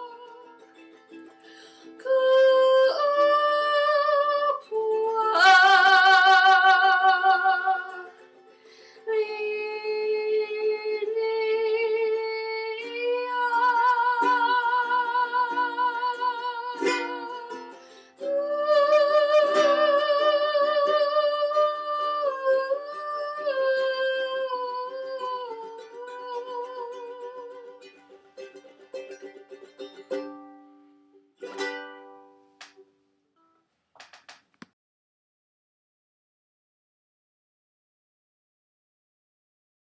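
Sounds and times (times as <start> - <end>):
woman singing with vibrato: 0.0 - 0.6, 1.8 - 8.2, 9.0 - 27.9
strummed ukulele: 0.0 - 33.0.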